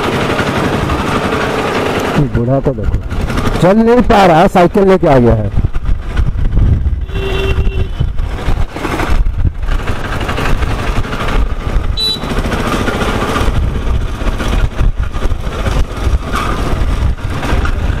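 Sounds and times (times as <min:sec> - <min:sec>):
motorcycle engine running: 0:00.0 - 0:18.0
wind buffeting microphone: 0:02.2 - 0:18.0
vehicle horn: 0:07.0 - 0:08.2, 0:12.0 - 0:12.4.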